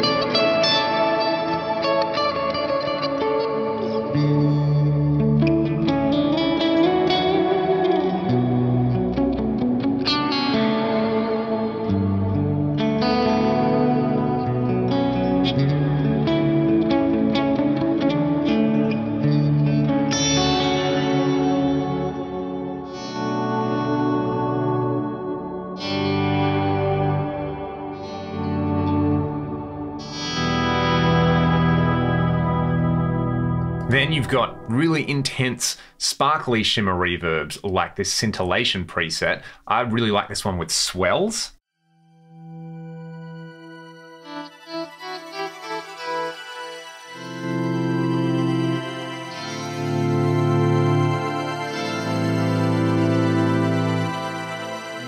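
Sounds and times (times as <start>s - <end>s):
clean electric guitar chords: 0.0s - 35.6s, 47.2s - 55.0s.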